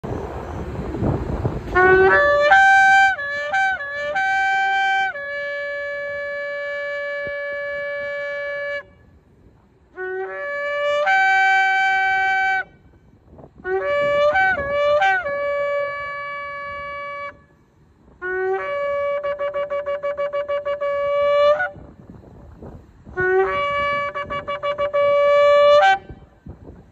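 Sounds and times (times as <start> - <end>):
shofar horn blowing: 1.6 - 9.2, 9.9 - 21.9, 23.1 - 26.5.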